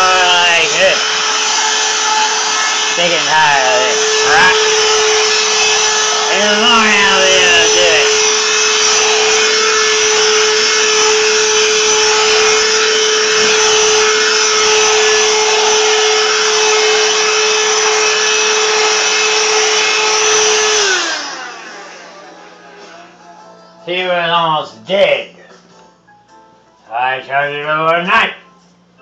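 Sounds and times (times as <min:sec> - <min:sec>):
hand vacuum whining: 0:00.0 - 0:23.1.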